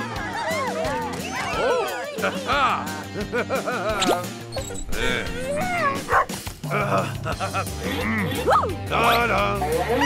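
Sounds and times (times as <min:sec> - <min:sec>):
background music: 0:00.0 - 0:10.0
dog barking: 0:06.1 - 0:06.3.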